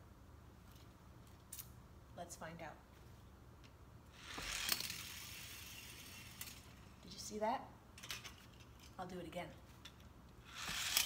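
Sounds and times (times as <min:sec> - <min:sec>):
toy car rolling down wooden ramp: 0:04.2 - 0:06.6, 0:10.5 - 0:11.0.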